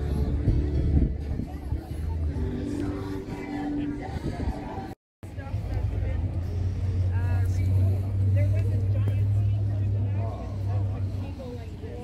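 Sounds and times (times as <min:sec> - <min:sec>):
people talking: 0:00.0 - 0:12.0
vehicle engine rumbling: 0:00.0 - 0:12.0.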